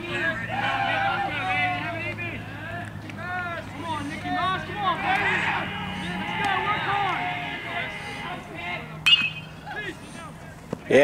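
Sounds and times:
faint spectators' voices: 0.0 - 11.0
metal bat hitting ball: 9.0 - 9.7.

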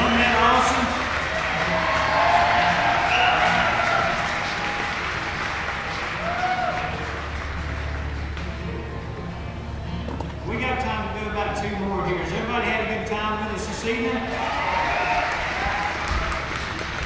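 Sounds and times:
audience applause: 0.0 - 8.8, 14.3 - 17.0.

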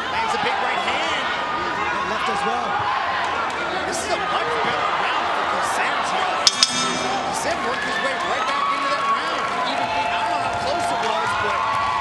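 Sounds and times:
ring bell clanging: 6.5 - 8.8.

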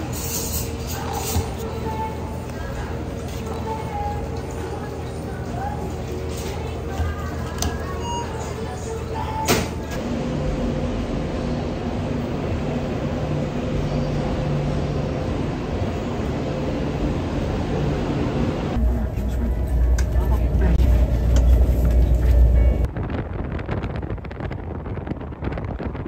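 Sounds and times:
train carriage rumble and hum: 0.0 - 26.0.

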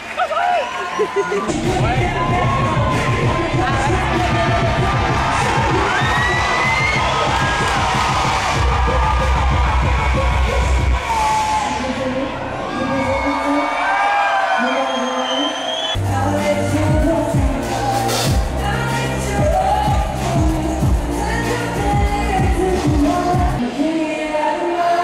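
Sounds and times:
crowd cheering and whooping: 0.0 - 16.0
live band playing: 16.0 - 23.6.

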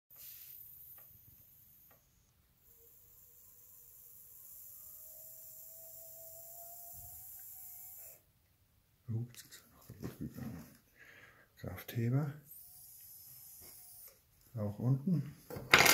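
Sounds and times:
tiny electric motor whine: 0.2 - 8.2.

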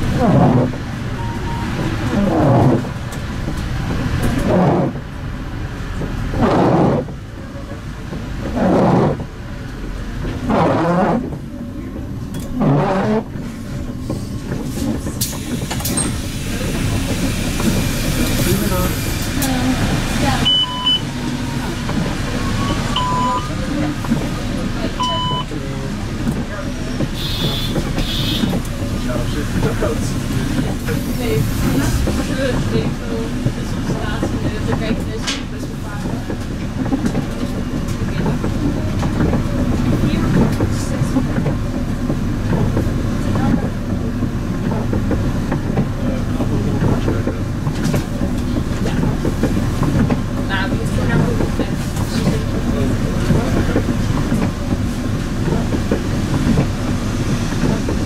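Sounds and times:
loud groaning sweep: 0.0 - 5.6
bus engine running: 0.0 - 58.0
short high beeps: 1.2 - 2.2, 20.4 - 21.1.

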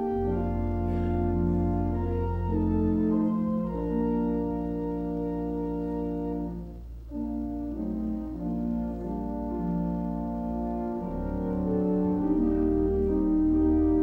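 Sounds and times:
church organ chords: 0.0 - 14.0.

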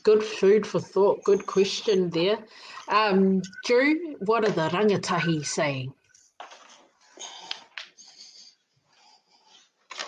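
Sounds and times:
soft breathy puffs: 7.0 - 9.8.

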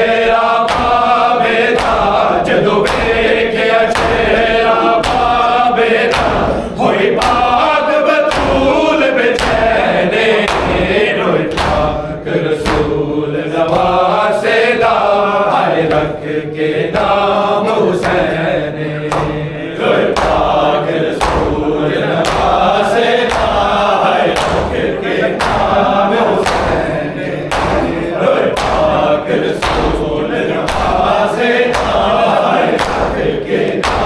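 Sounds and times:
men chanting a lament: 0.0 - 34.0
hands slapping bare chests: 0.7 - 15.1, 15.7 - 16.3, 18.0 - 34.0.

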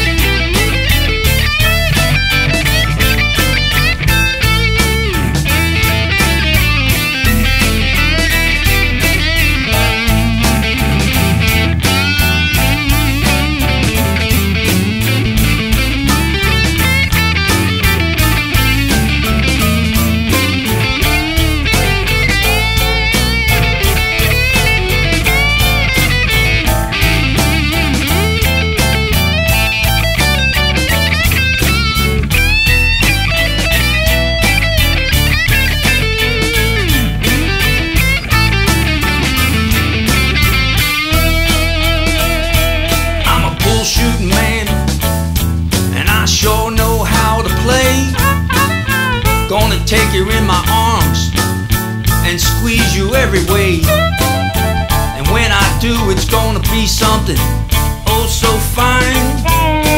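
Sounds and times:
bass guitar: 0.0 - 59.9
electric lead guitar bending notes: 0.0 - 59.9
steady drum beat: 0.0 - 59.9.

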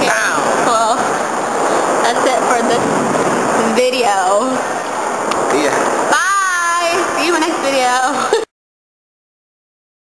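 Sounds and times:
rushing background noise: 0.0 - 8.3.

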